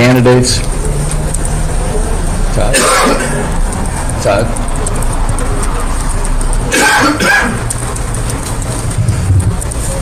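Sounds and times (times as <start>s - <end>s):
short cough: 2.7s - 3.4s, 6.7s - 7.6s.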